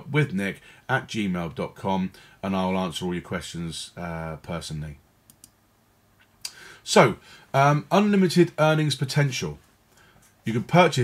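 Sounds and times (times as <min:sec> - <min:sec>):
computer mouse clicks: 0:05.3 - 0:05.6.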